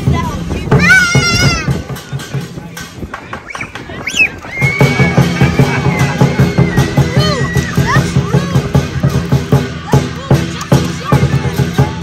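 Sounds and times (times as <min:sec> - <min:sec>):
drum and cymbals beat: 0:00.0 - 0:12.0.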